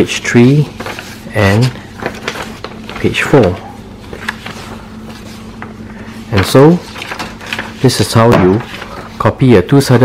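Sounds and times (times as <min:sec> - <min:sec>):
paper rustling: 0:00.0 - 0:09.4
steady low hum: 0:00.0 - 0:10.0.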